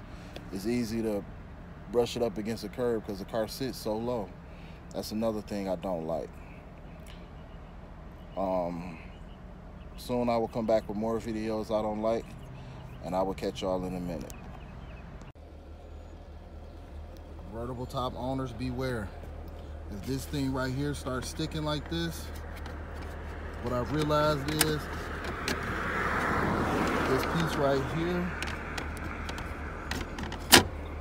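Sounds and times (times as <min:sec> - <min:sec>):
car engine idling: 0:05.9 - 0:31.0.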